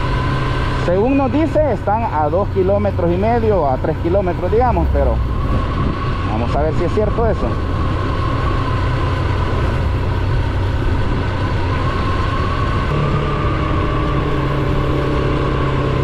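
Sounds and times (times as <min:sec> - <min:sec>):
motorcycle engine running: 0:07.5 - 0:16.0.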